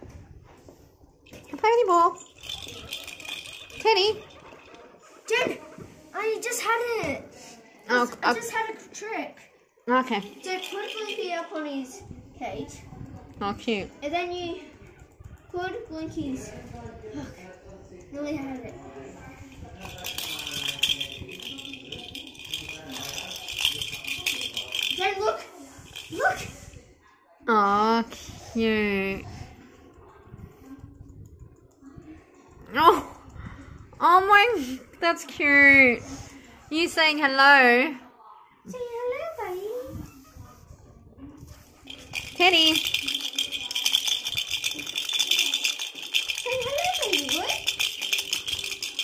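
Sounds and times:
pet ball toy rattling: 0:01.2 - 0:05.0, 0:09.9 - 0:11.6, 0:18.4 - 0:26.7, 0:41.5 - 0:49.0.

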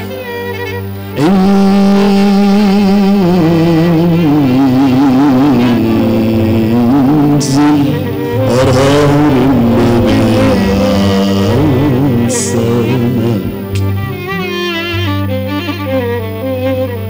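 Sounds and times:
instrumental accompaniment: 0:00.0 - 0:17.0
man singing ornamented vocal line: 0:01.2 - 0:14.8.

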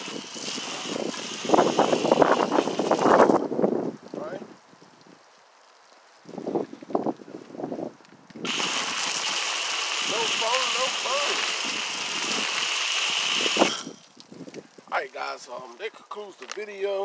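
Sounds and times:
foam gun spray hiss: 0:00.0 - 0:03.4, 0:08.4 - 0:14.1.

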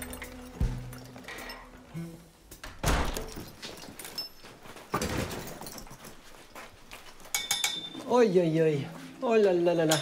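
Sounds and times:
metallic clinks: 0:00.0 - 0:01.9, 0:03.2 - 0:06.3, 0:07.2 - 0:08.1.

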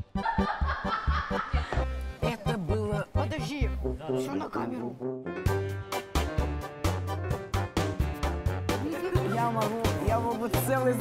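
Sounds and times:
background music with beat: 0:00.0 - 0:04.3, 0:04.9 - 0:11.0
girl laughing muffled: 0:00.2 - 0:02.6.

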